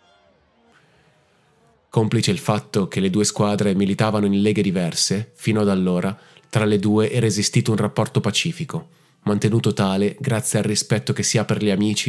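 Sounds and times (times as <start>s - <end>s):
man speaking: 2.0s - 12.0s.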